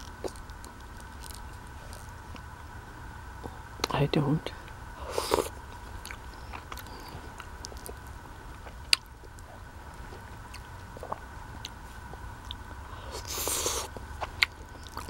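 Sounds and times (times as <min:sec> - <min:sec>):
quiet chewing with mouth clicks: 0:00.0 - 0:02.5, 0:04.6 - 0:15.0.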